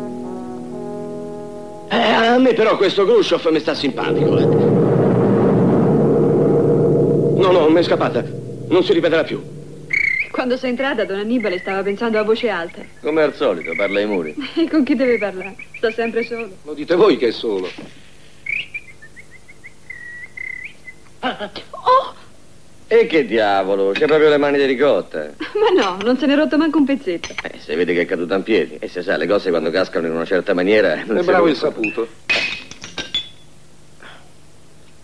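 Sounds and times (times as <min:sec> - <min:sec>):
high bird-like chirping whistle: 0:09.9 - 0:10.5, 0:18.4 - 0:21.0.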